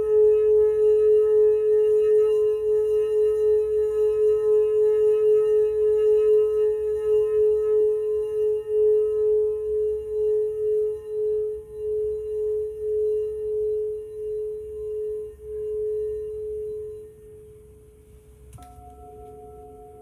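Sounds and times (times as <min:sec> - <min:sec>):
crystal singing bowl ringing: 0:00.0 - 0:18.0, 0:18.6 - 0:20.0.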